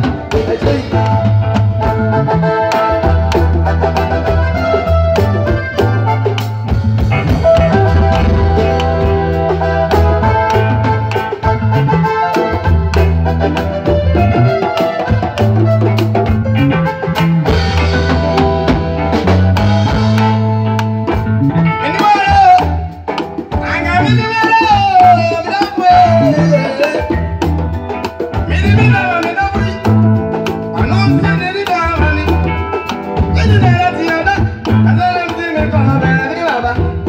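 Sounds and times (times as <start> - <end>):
drum kit beating: 0.0 - 37.0
guitar notes: 0.0 - 37.0
keyboard notes: 0.0 - 37.0
walking bass guitar line: 0.0 - 37.0.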